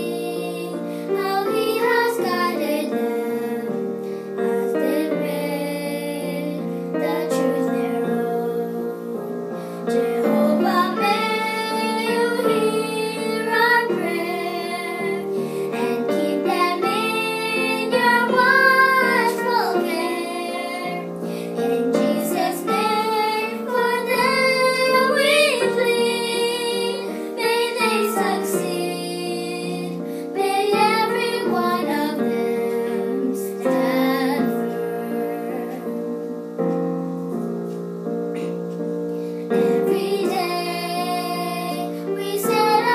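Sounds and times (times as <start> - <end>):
girls singing a hymn: 0.0 - 42.9
piano accompaniment: 0.0 - 42.9.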